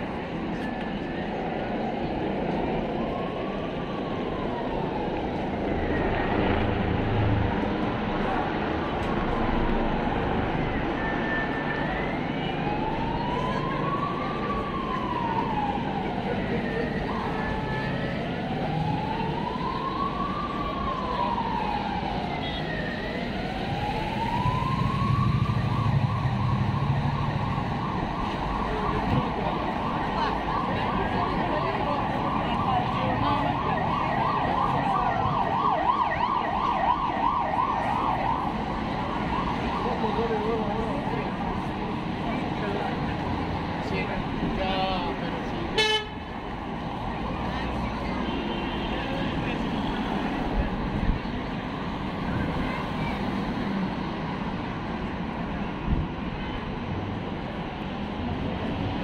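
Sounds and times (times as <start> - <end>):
city traffic: 0.0 - 59.0
emergency vehicle siren wailing: 0.0 - 59.0.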